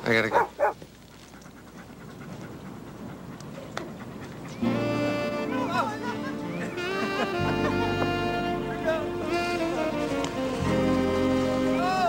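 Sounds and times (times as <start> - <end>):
dog panting: 0.2 - 5.6.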